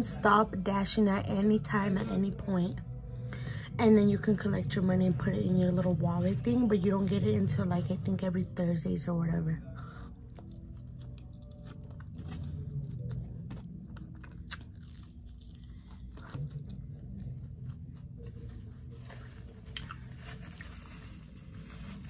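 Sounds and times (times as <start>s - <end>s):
biting and chewing food: 9.8s - 22.0s.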